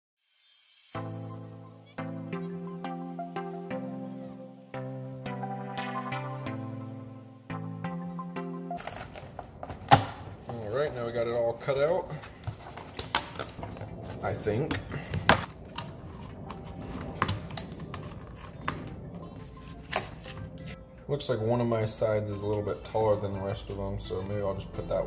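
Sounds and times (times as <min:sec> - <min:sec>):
background music: 0:00.5 - 0:25.0.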